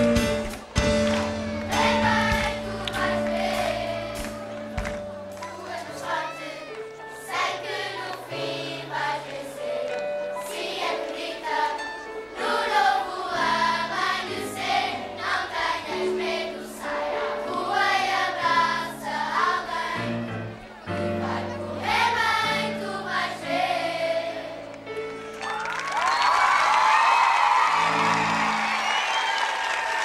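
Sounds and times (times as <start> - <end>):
instrumental accompaniment: 0.0 - 18.7
children's choir singing: 0.0 - 25.1.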